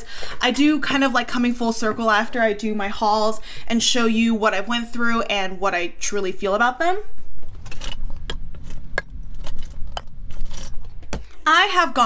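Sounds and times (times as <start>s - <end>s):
low rumble of handling: 7.2s - 11.4s.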